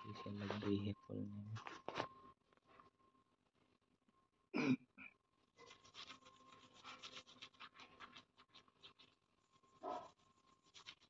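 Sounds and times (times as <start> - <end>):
puppy gnawing at a strap: 5.6 - 9.2, 9.8 - 11.0.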